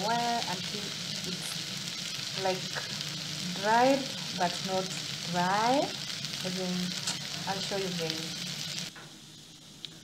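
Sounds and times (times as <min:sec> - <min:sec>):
faint hiss: 0:00.0 - 0:10.0
meat sizzling in a pot: 0:00.0 - 0:10.0.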